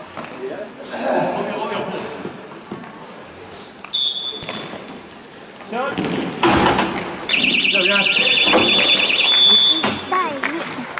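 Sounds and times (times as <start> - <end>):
referee's pea whistle trilling: 3.9 - 4.6, 7.3 - 10.1
players' voices: 7.3 - 10.9.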